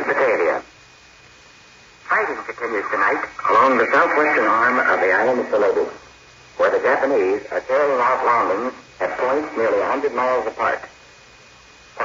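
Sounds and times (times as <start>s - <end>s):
faint high whine: 0.0s - 12.0s
radio hiss: 0.0s - 12.0s
person speaking over radio: 2.1s - 6.0s.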